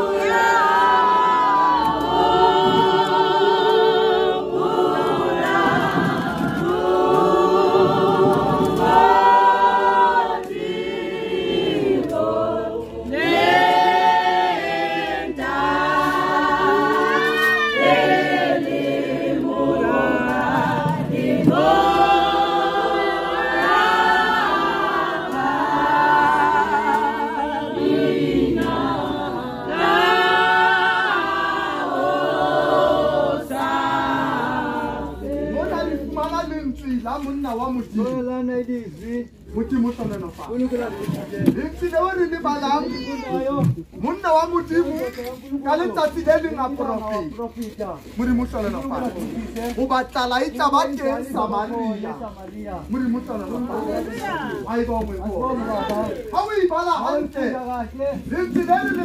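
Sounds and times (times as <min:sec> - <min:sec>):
congregation singing: 0:00.0 - 0:59.0.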